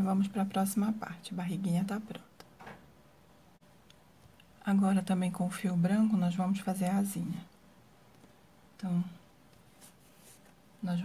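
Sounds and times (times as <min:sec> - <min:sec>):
woman speaking: 0:00.0 - 0:02.3, 0:04.6 - 0:07.5, 0:08.8 - 0:09.2, 0:10.8 - 0:11.0
yarn rustling on crochet hook: 0:09.6 - 0:10.6.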